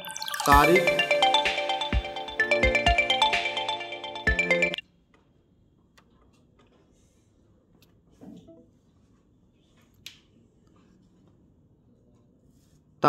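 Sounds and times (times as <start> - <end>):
phone ringtone chiming melody: 0.0 - 4.8.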